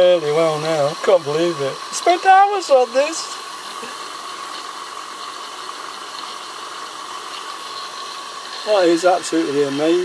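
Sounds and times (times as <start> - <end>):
steam hissing: 0.0 - 10.0.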